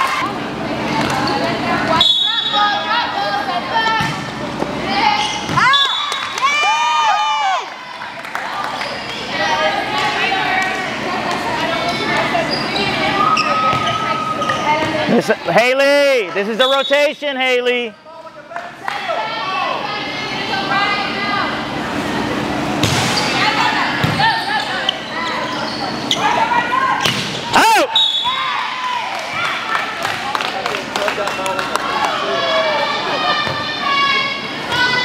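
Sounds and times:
players calling and shouting: 0.0 - 35.0
volleyball being struck: 22.8 - 23.3.

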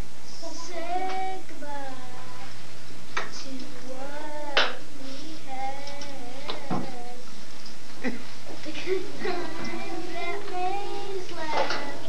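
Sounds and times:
child singing: 0.3 - 2.6, 3.3 - 7.3, 8.6 - 12.0.

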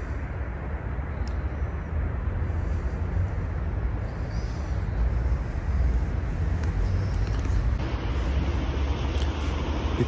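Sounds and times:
low urban rumble: 0.0 - 10.0.

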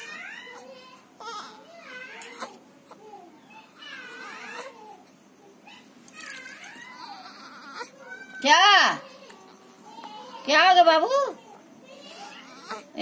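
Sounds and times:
baby whimpering cries: 6.2 - 8.4, 9.2 - 13.0.

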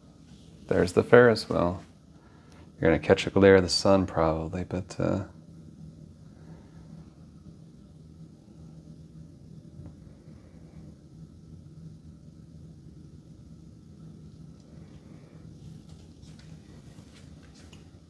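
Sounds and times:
low background hum: 0.0 - 18.0.

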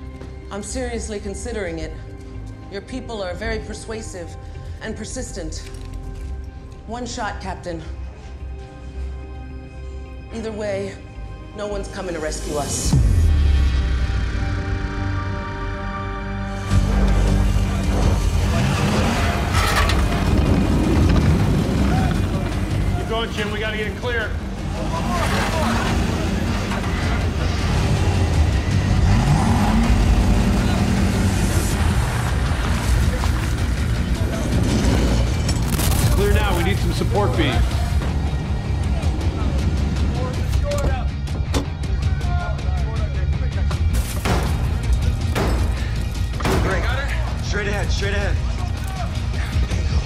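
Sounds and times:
dramatic orchestral music: 0.0 - 50.0
heavy vehicle rumbling: 16.6 - 23.8, 24.4 - 35.6
debris crunching: 16.8 - 28.0, 29.0 - 38.4, 43.9 - 49.2
sharp cracks: 35.2 - 36.9.

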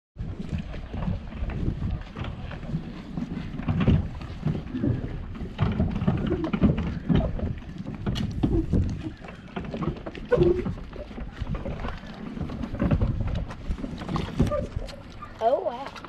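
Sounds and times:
wind buffeting microphone: 0.2 - 15.9
footsteps on wooden boards: 0.2 - 16.0.

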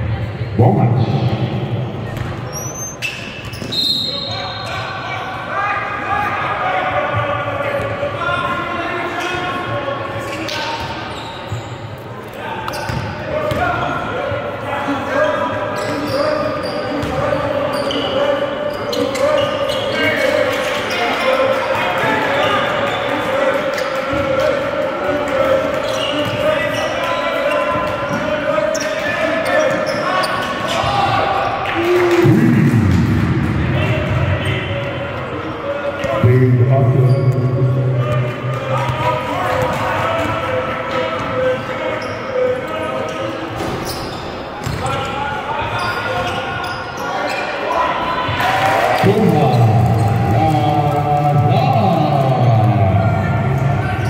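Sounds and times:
basketball bouncing on court: 2.0 - 2.5, 12.7 - 13.6, 17.0 - 17.2.

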